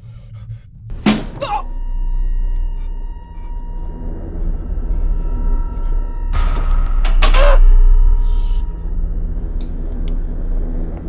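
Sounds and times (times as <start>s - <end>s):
deep low rumble: 0.0s - 11.0s.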